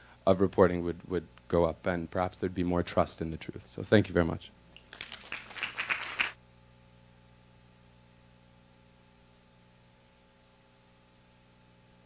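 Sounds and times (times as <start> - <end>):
audience applauding: 4.9 - 6.4.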